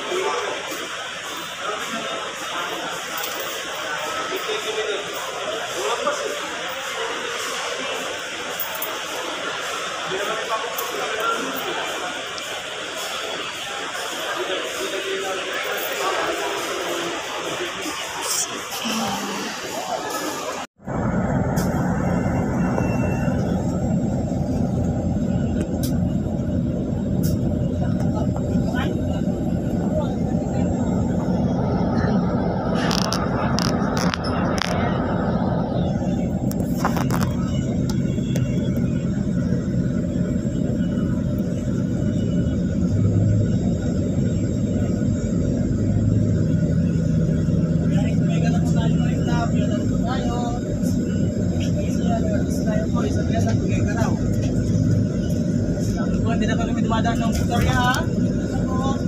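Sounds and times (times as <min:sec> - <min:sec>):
people talking: 0:00.0 - 0:20.8, 0:21.4 - 0:59.0
bus engines idling: 0:00.0 - 0:59.0.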